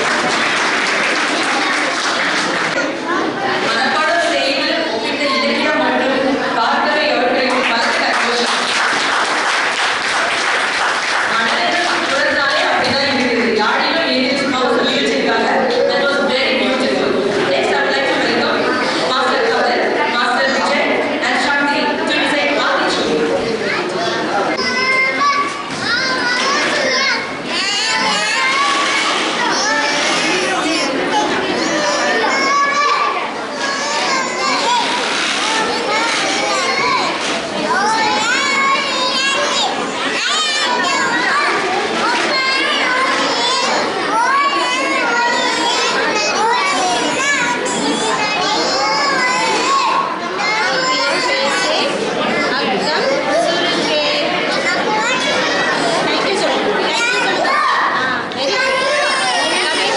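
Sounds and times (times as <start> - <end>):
young children talking and calling: 0.0 - 59.9.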